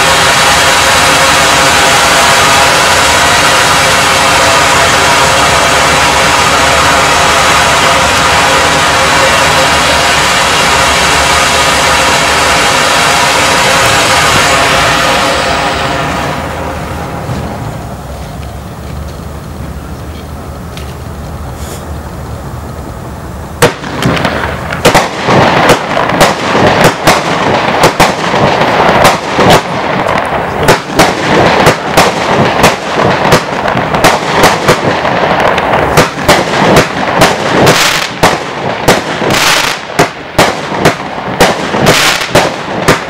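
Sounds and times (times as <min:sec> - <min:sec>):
firework fountain hissing: 0:00.0 - 0:43.0.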